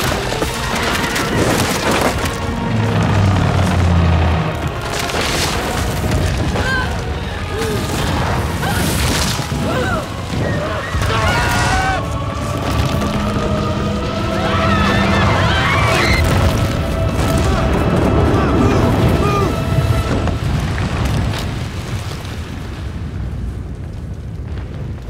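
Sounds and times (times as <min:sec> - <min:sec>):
dramatic film music: 0:00.0 - 0:22.6
people crying out and shouting: 0:06.4 - 0:20.2.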